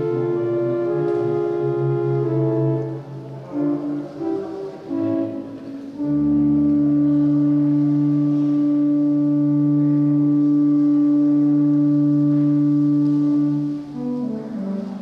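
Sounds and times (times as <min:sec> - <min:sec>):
pipe organ chord: 0:00.0 - 0:15.0.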